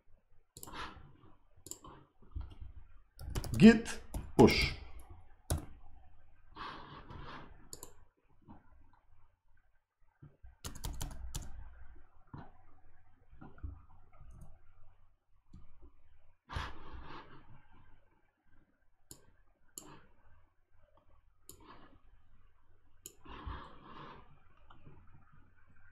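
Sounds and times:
computer keyboard clicks: 3.2 - 4.4, 5.5 - 5.8, 10.6 - 11.7.

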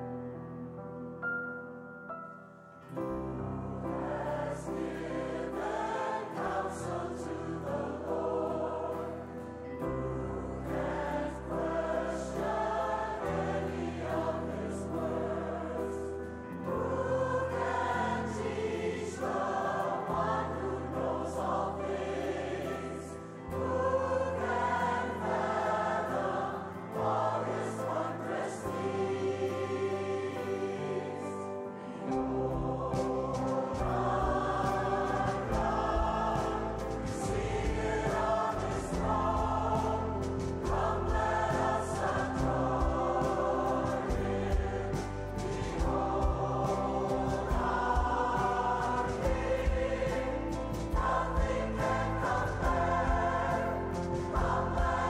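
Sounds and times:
choir singing a hymn: 2.9 - 55.0.

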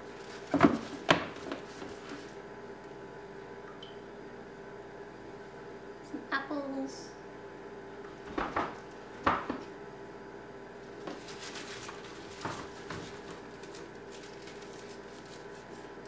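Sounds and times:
crinkly rustling: 0.0 - 2.4, 11.0 - 16.0
vegetables knocking in plastic bin: 0.4 - 1.9.

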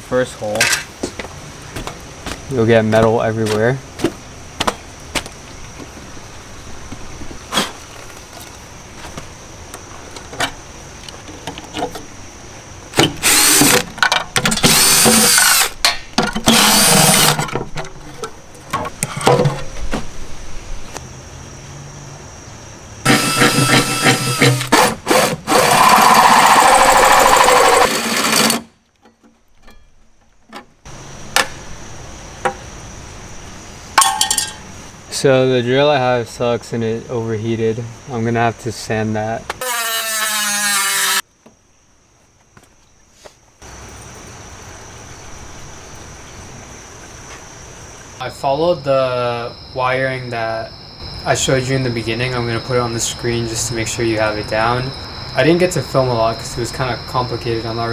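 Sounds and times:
power drill cutting steel: 13.2 - 13.8, 14.6 - 15.8, 16.4 - 17.4, 23.1 - 28.7, 39.6 - 41.2.

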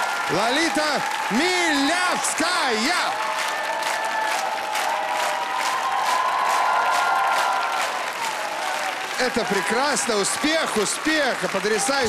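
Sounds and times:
studio audience applauding: 0.0 - 12.0.

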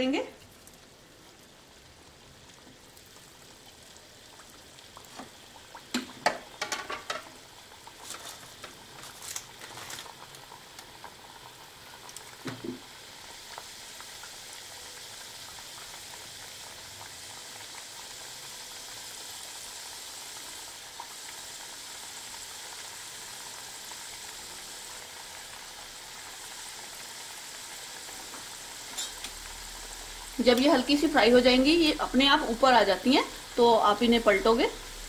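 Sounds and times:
food sizzling in hot oil: 0.0 - 35.0.

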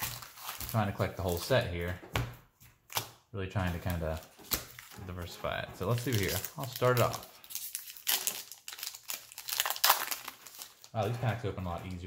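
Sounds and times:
foil wrapper tearing and crinkling: 0.0 - 1.6, 5.9 - 12.0.

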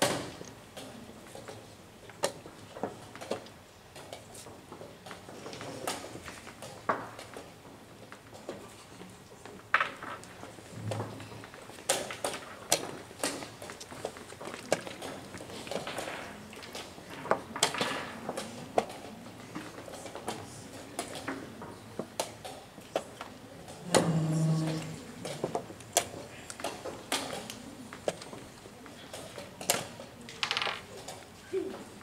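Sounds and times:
chess pieces clicking on board: 29.2 - 31.3.

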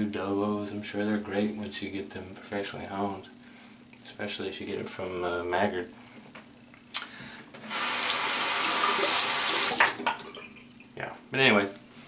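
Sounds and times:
tap running into sink: 8.7 - 10.3.

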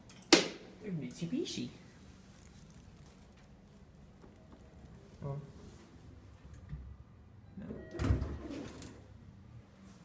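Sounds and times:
elevator chime: 7.5 - 8.2
elevator doors sliding open: 7.8 - 9.1.

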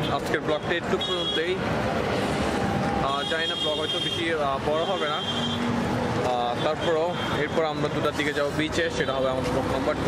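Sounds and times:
man talking: 0.0 - 1.7, 3.0 - 5.5, 6.2 - 10.0
street background noise: 0.0 - 10.0.

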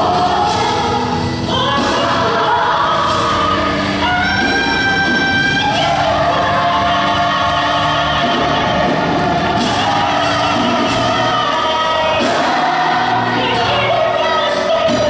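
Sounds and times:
choir singing held notes: 0.0 - 15.0.

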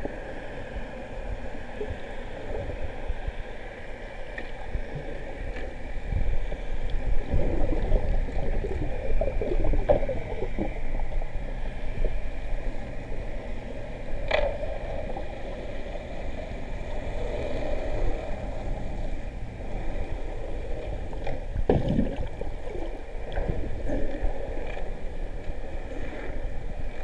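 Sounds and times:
faint steady hum: 0.0 - 27.0
water swishing and gurgling: 0.0 - 27.0.

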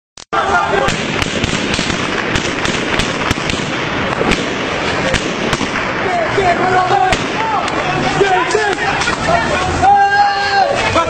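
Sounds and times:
street noise: 0.2 - 11.0
people shouting: 0.3 - 1.5, 5.9 - 11.0
gunshots cracking: 0.7 - 7.8.

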